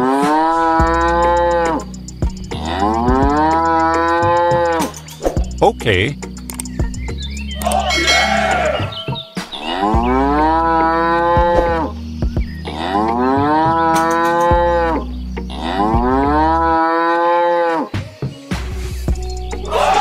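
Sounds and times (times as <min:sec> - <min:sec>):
cow mooing: 0:02.6 - 0:04.8, 0:07.6 - 0:11.9.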